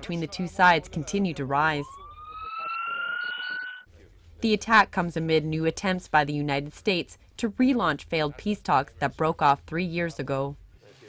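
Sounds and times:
ambulance siren wailing: 0:01.6 - 0:03.9.

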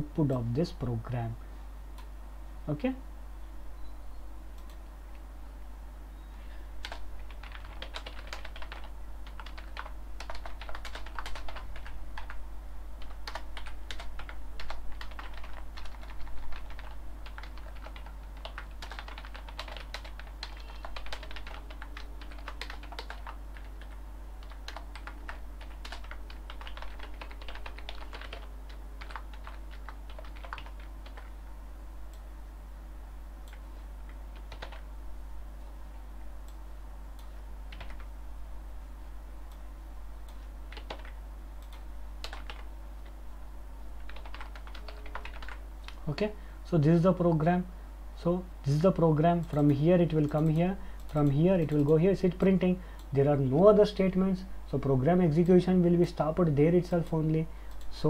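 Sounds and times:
steady low hum: 0:00.0 - 0:58.0
typing on computer keyboard: 0:06.8 - 0:12.4, 0:13.0 - 0:31.3, 0:33.5 - 0:34.8, 0:37.7 - 0:38.1, 0:40.7 - 0:42.7, 0:44.0 - 0:46.0.

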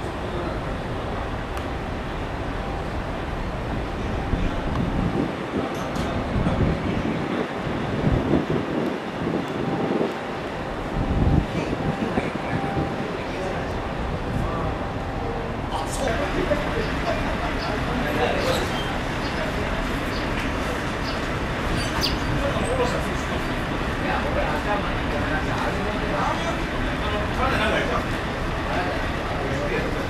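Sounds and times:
wind buffeting microphone: 0:00.0 - 0:25.9.

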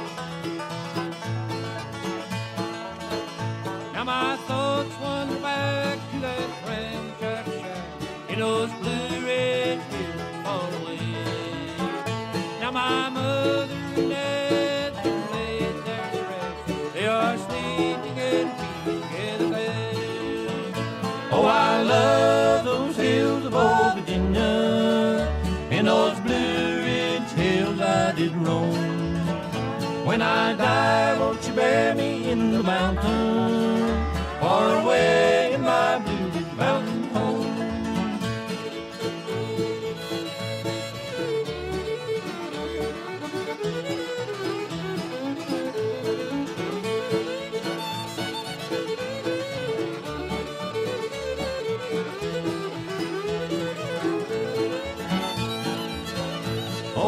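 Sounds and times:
banjo picking: 0:00.0 - 0:57.0
guitar picking: 0:00.0 - 0:57.0
steady bass: 0:13.7 - 0:41.0.

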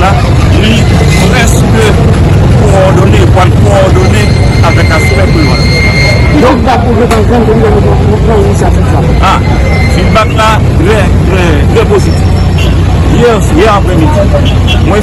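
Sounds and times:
man speaking: 0:00.0 - 0:05.7, 0:09.2 - 0:12.4, 0:13.0 - 0:15.0
street traffic rumble: 0:00.0 - 0:15.0.

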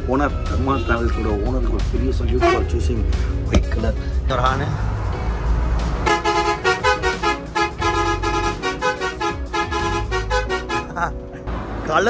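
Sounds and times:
engine and road rumble: 0:00.0 - 0:12.0
musical bus horn: 0:02.3 - 0:03.0, 0:06.0 - 0:11.2.

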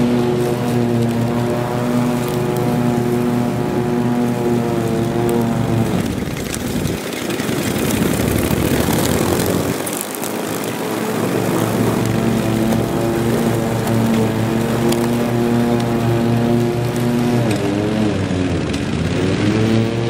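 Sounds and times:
lawn tractor engine running: 0:00.0 - 0:20.0.

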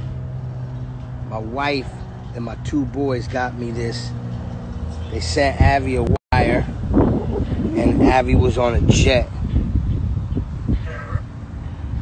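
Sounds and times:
wind rumbling on microphone: 0:05.0 - 0:12.0
faint pitched call: 0:10.8 - 0:11.3.

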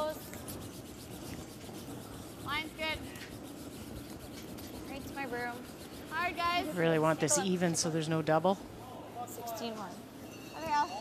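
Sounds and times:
brooms sweeping ice: 0:00.0 - 0:08.1.

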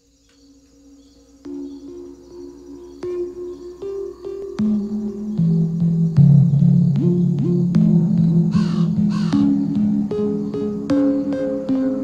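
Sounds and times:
slow music of held notes: 0:00.0 - 0:12.0
crow cawing: 0:08.4 - 0:11.2.

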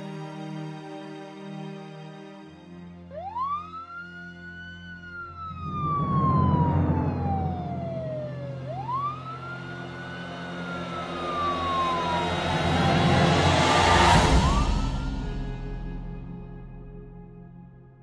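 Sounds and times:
low background music: 0:00.0 - 0:18.0
emergency siren wailing: 0:03.0 - 0:16.9.

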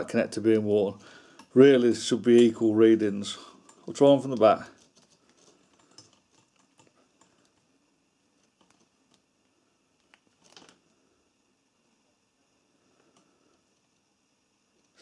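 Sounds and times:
faint clicks of test probes: 0:01.3 - 0:01.6, 0:13.0 - 0:14.1.

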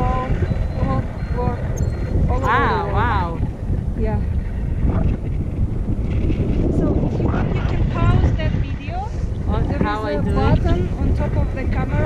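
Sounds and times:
wind buffeting microphone: 0:00.0 - 0:12.0
person's voice: 0:02.3 - 0:03.4, 0:09.5 - 0:12.0.

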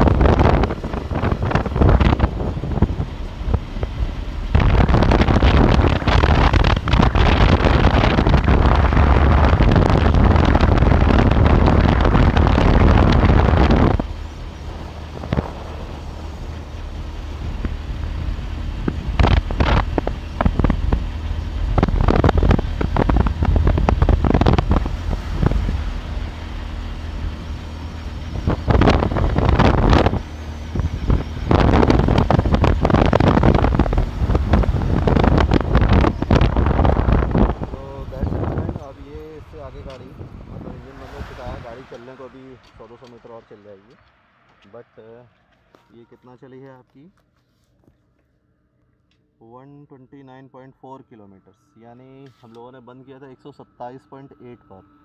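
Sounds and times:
motorcycle engine running: 0:00.0 - 0:43.2
wind buffeting microphone: 0:00.0 - 0:44.0.

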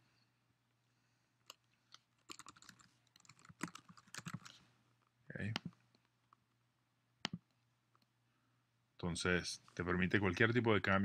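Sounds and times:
typing on computer keyboard: 0:02.2 - 0:04.6.

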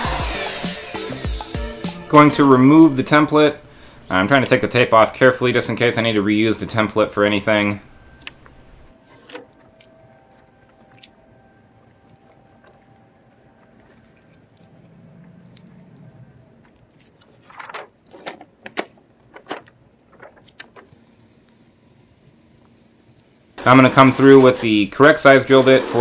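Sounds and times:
paper template rustling: 0:08.1 - 0:11.2, 0:11.8 - 0:15.9, 0:16.6 - 0:21.0
tape peeling off painted metal: 0:08.1 - 0:11.2, 0:16.6 - 0:21.0.

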